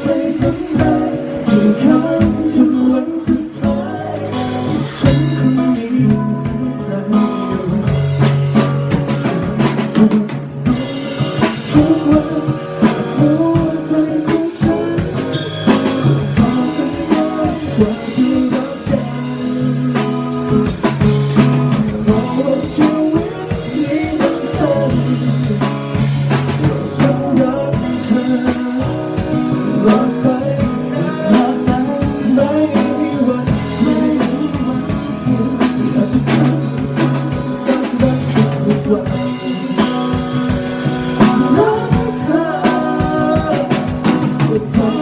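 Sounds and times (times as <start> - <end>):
drum kit beating: 0.0 - 45.0
guitar: 0.0 - 45.0
live band music: 0.0 - 45.0
man singing into a microphone: 0.0 - 45.0.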